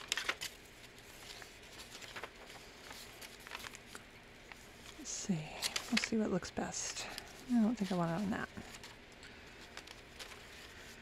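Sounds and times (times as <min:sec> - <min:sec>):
crisp paper flicks: 0:00.0 - 0:05.0, 0:05.6 - 0:06.2
paper pages rustling: 0:00.0 - 0:11.0.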